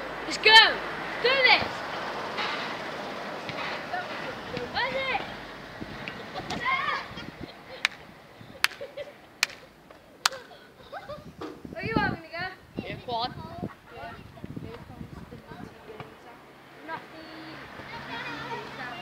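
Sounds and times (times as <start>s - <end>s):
children calling and shouting: 0.0s - 19.0s.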